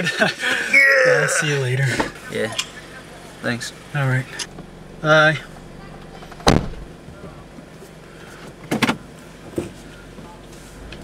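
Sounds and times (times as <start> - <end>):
car door shutting: 4.4 - 7.3.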